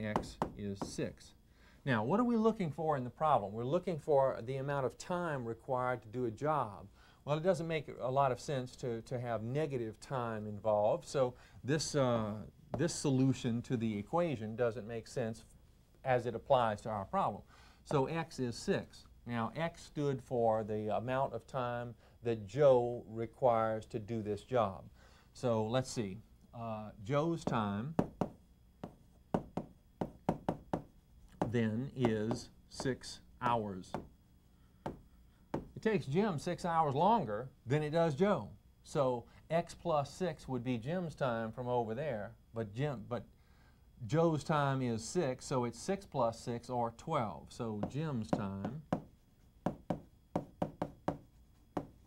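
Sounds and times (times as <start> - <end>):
chalk tapping on chalkboard: 0.1 - 1.1, 27.4 - 34.2, 34.8 - 35.8, 47.8 - 52.0.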